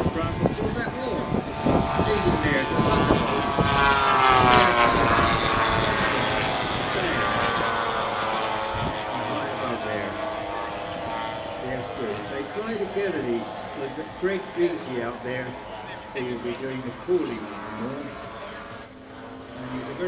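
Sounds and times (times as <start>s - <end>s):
model aircraft engines droning: 0.0s - 20.0s.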